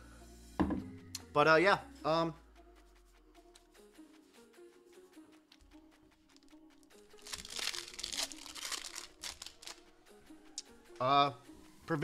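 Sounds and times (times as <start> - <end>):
quiet background music: 0.0 - 12.0
foil wrapper tearing and crinkling: 7.1 - 9.9.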